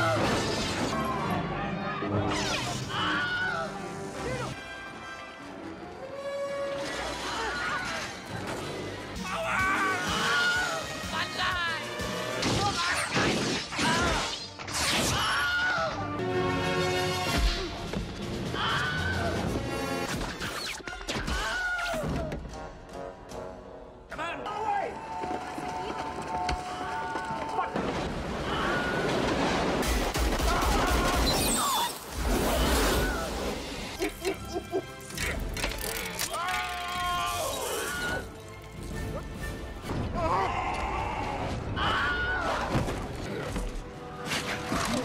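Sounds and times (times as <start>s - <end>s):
film soundtrack music: 0.0s - 31.4s, 32.1s - 45.0s.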